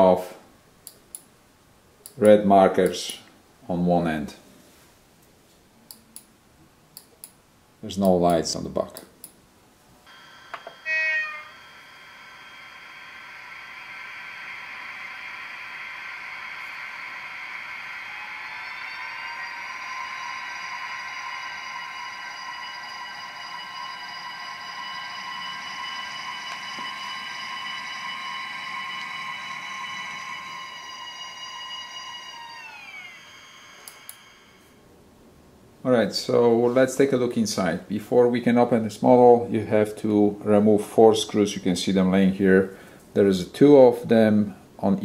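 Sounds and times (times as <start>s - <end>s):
short loud tone: 10.1s - 12.8s
electric locomotive traction whine: 10.1s - 34.8s.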